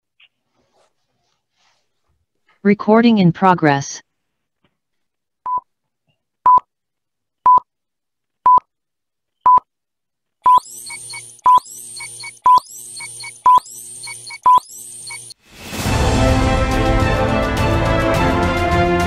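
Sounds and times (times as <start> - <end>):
electronic countdown beeps: 10.5 - 15.4
quick chirps: 10.5 - 15.4.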